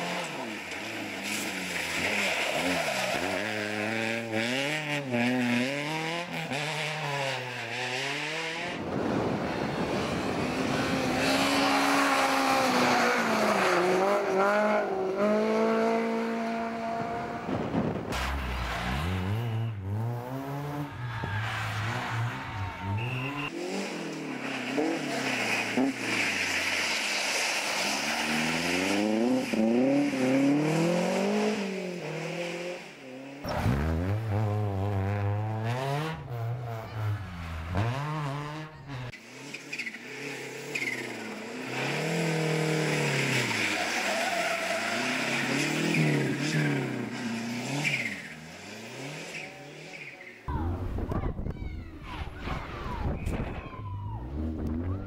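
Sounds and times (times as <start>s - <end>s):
rally car engines revving: 0.0s - 51.0s, 54.1s - 55.0s.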